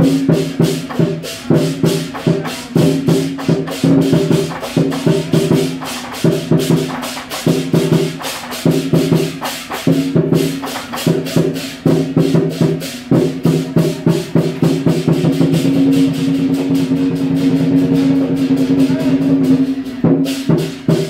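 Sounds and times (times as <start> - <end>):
big drum beating: 0.0 - 21.0
crashing cymbals: 0.0 - 21.0
gong: 0.0 - 21.0.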